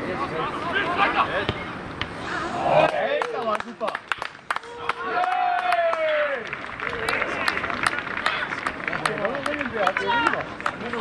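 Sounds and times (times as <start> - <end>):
footballers shouting: 0.0 - 1.8, 4.5 - 11.0.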